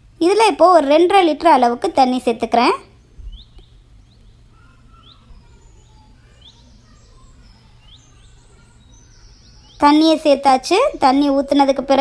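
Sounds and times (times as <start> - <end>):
distant bird chirping: 0.0 - 12.0.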